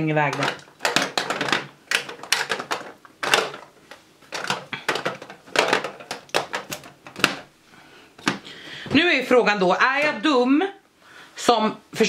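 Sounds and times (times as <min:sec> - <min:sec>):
plastic cases clicking and clattering: 0:00.3 - 0:07.5, 0:08.2 - 0:08.5.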